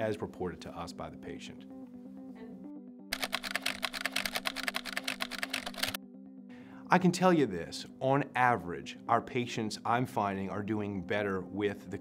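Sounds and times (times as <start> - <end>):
soft background music: 0.0 - 12.0
keyboard typing clicks: 3.1 - 6.0.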